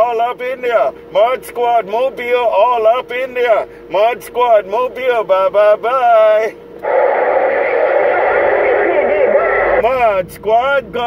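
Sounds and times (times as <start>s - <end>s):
faint voice over radio: 6.8s - 10.0s
radio receiver static: 6.8s - 10.0s.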